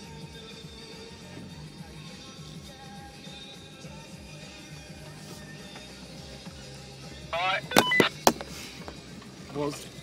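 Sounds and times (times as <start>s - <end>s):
music from car stereo: 0.0s - 10.0s.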